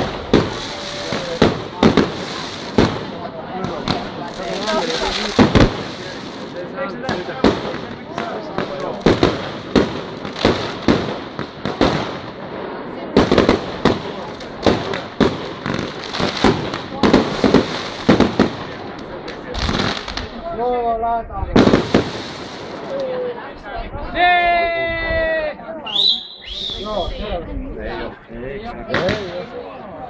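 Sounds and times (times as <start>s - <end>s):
crackling hiss of fireworks: 0.0s - 20.8s, 21.5s - 23.6s, 28.9s - 29.7s.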